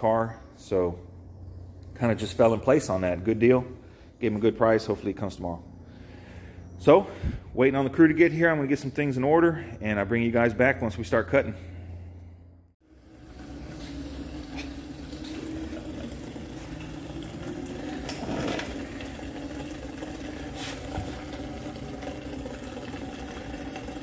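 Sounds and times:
fuel splashing into plastic bucket: 13.0 - 24.0.

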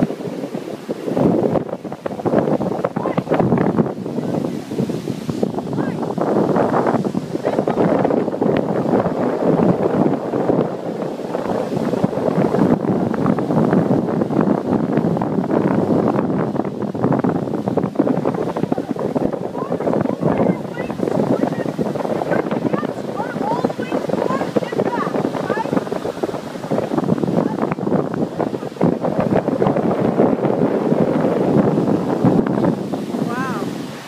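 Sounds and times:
ocean surf breaking: 0.0 - 34.0
wind buffeting microphone: 0.0 - 34.0.

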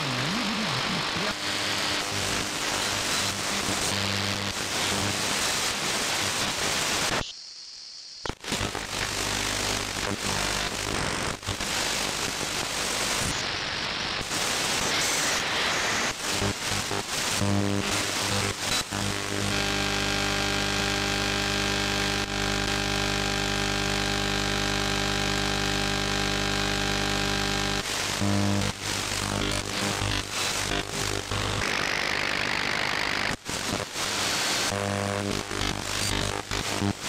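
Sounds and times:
radio buzz of even tones: 0.0 - 5.4, 14.7 - 37.0
radio static and hiss: 0.0 - 37.0.

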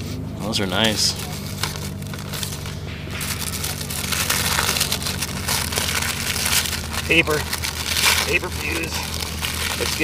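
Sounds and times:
paper wrapper crinkling and tearing: 0.6 - 10.0.

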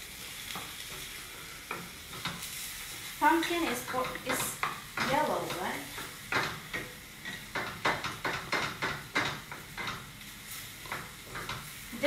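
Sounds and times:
wooden spatula scraping a skillet: 0.2 - 12.0.

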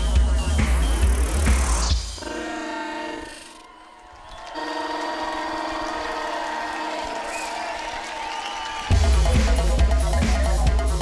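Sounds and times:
band with drums and heavy bass: 0.0 - 2.2, 8.9 - 11.0.

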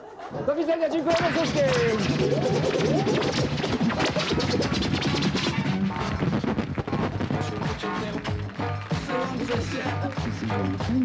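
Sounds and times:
record scratching: 1.0 - 8.4
sharp crashing hits: 1.1 - 5.8
dj music with beat: 1.1 - 11.0.

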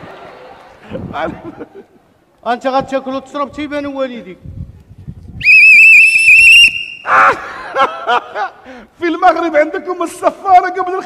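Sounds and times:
whistle trilling blast: 5.4 - 7.1.

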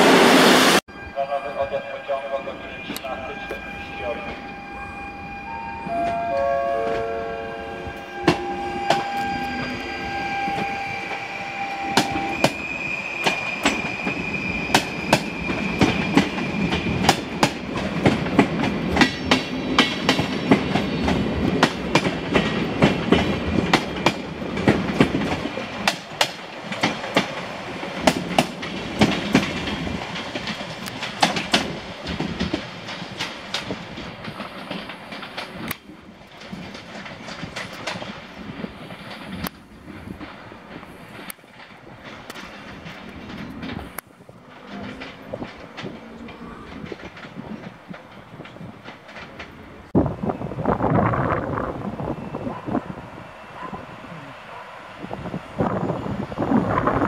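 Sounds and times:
high whine: 0.0 - 15.7
train wheels clicking over rail joints: 8.0 - 50.7.

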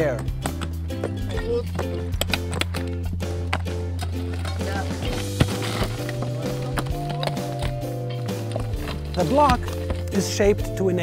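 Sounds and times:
metal pick striking rock: 0.4 - 10.3.

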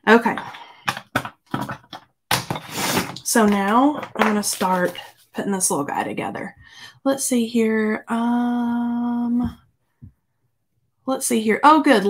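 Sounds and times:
paper rustling: 2.6 - 5.3.

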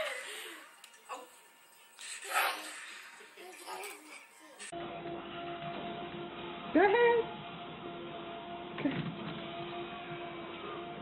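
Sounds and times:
treadmill motor whine: 4.7 - 11.0.

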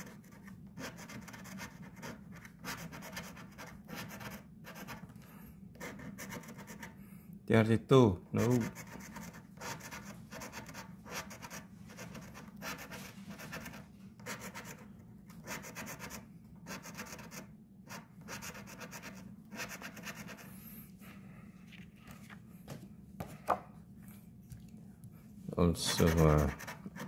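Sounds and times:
coin scraping lottery ticket: 8.4 - 9.0, 25.9 - 26.9.

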